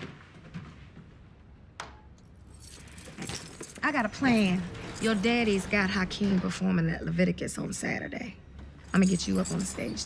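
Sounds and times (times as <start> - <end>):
keys jangling: 2.2 - 5.2, 8.9 - 10.0.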